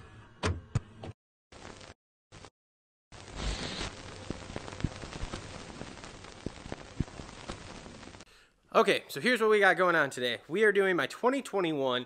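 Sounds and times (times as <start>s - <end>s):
old film hiss: 3.2s - 8.3s
film pops and clicks: 3.6s - 8.2s.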